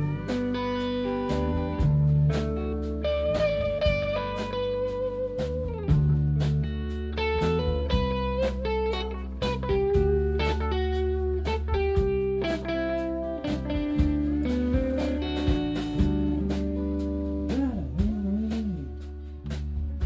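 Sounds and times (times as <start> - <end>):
electric guitar note bending: 0.0 - 20.0
live band instrumental: 0.0 - 20.0.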